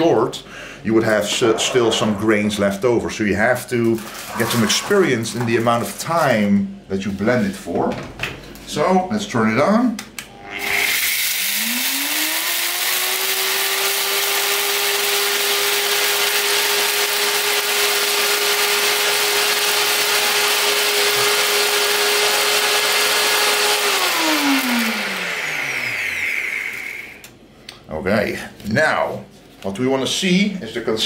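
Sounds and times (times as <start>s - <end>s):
blender motor running: 10.3s - 27.3s
rice grains being milled: 10.6s - 26.9s.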